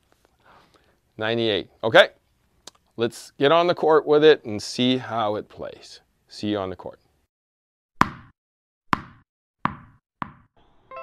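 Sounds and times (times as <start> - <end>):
ball bouncing: 8.0 - 10.5.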